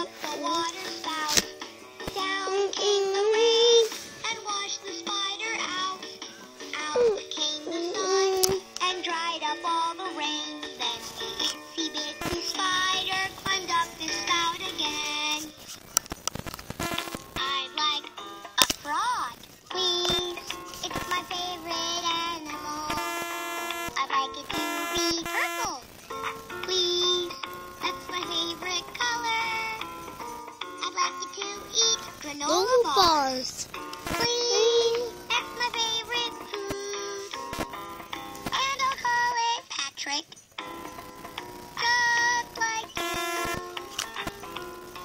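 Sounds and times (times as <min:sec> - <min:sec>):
recorded voice singing: 0:24.0 - 0:29.9, 0:30.8 - 0:37.5.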